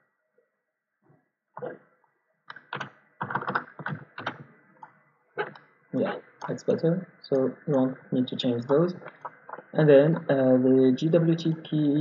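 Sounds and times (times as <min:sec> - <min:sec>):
computer keyboard typing: 0:02.5 - 0:04.4.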